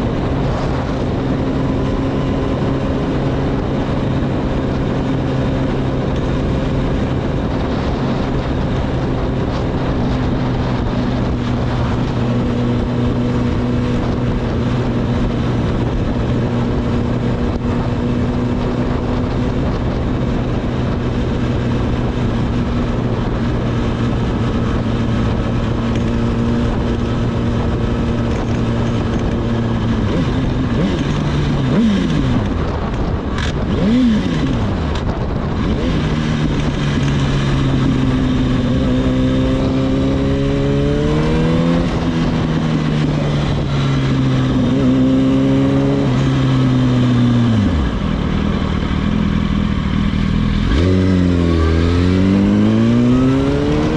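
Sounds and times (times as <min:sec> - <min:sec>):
motorcycle engine revving: 0:00.0 - 0:53.9
wind rushing over microphone: 0:00.0 - 0:53.9.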